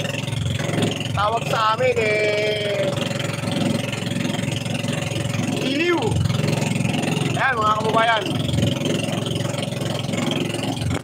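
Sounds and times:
boat engine running: 0.0 - 11.0.

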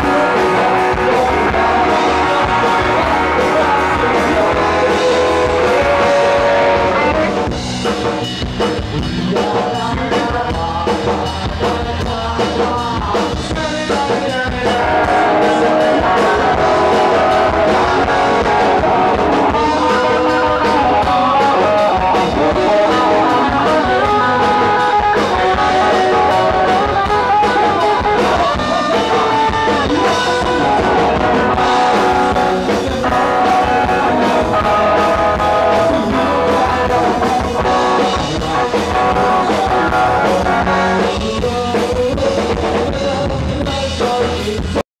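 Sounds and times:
person singing into a microphone: 0.0 - 7.6, 9.0 - 44.8
drum kit: 0.0 - 44.8
electric guitar: 0.0 - 44.8.

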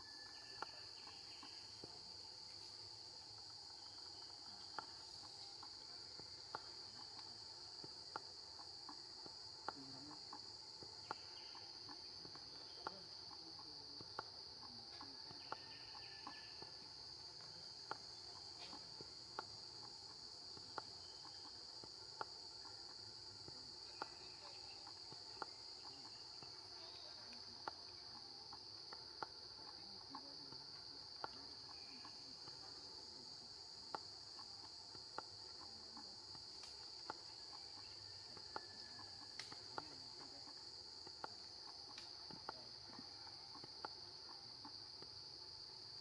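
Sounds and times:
insects droning: 0.0 - 46.0.

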